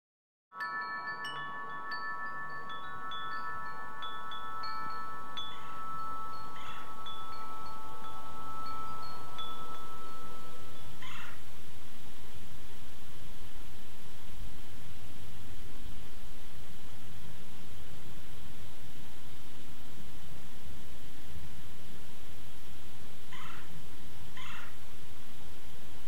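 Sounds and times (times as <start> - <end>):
chime tones ringing: 0.6 - 11.1.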